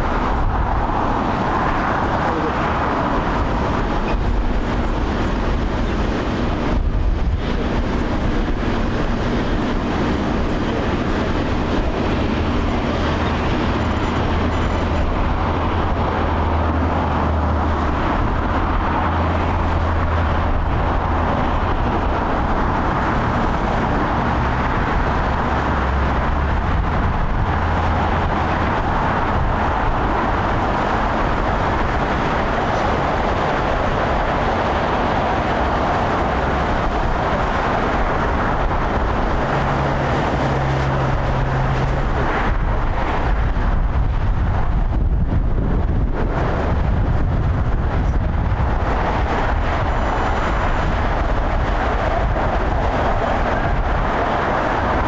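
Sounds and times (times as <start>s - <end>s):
jet engines running: 0.0s - 55.0s.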